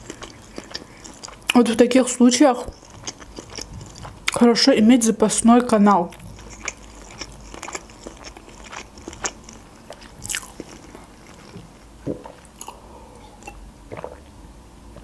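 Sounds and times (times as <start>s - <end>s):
close chewing with mouth clicks: 0.0s - 1.9s, 2.5s - 4.5s, 6.1s - 12.8s.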